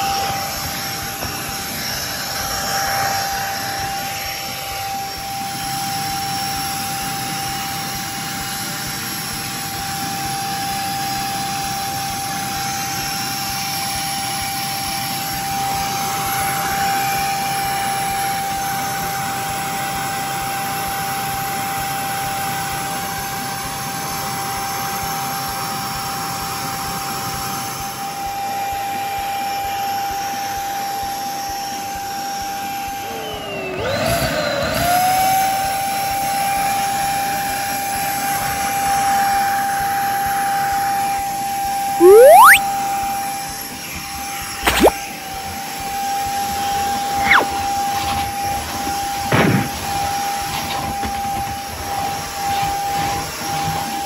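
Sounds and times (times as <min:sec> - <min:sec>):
handheld vacuum cleaner whining: 0:00.0 - 0:09.4, 0:32.8 - 0:35.0.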